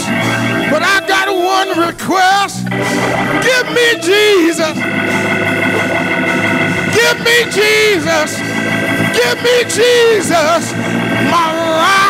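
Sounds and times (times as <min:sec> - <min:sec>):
organ holding a chord: 0:00.0 - 0:12.0
person preaching in song: 0:00.7 - 0:02.6, 0:03.4 - 0:04.8, 0:06.9 - 0:08.4, 0:09.1 - 0:12.0.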